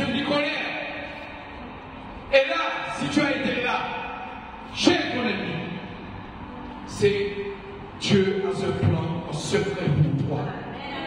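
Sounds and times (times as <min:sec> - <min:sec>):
man preaching into a microphone: 0:00.0 - 0:01.6, 0:02.2 - 0:06.1, 0:06.9 - 0:10.7.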